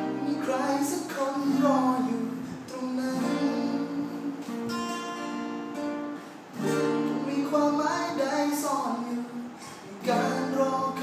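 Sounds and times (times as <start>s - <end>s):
acoustic guitars strumming chords: 0.0s - 11.0s.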